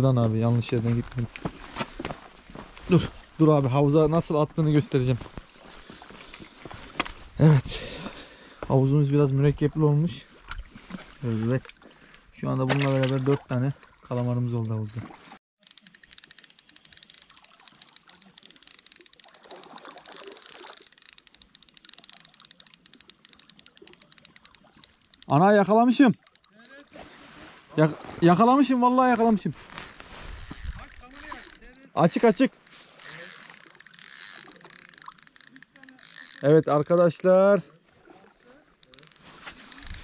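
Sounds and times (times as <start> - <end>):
fishing reel ticking: 15.6 - 26.9, 28.0 - 28.3, 29.0 - 37.5, 38.8 - 40.0.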